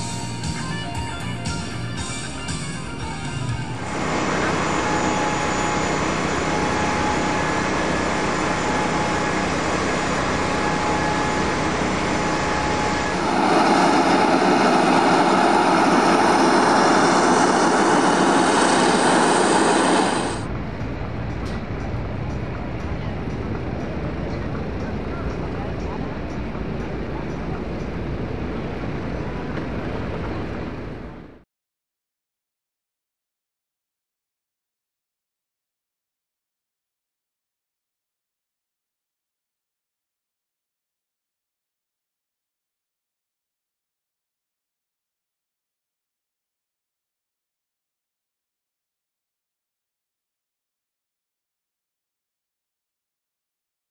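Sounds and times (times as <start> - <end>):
music: 0.0 - 3.9
jet engines rushing and whining: 0.0 - 31.4
voices: 21.8 - 30.6.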